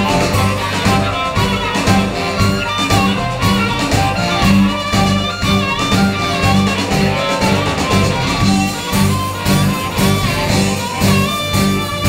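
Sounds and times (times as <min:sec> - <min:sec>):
blues-soul band playing: 0:00.0 - 0:12.0.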